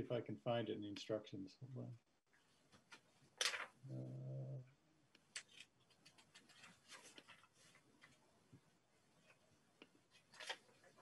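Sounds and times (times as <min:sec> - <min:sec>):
low voice humming: 0:03.9 - 0:04.7.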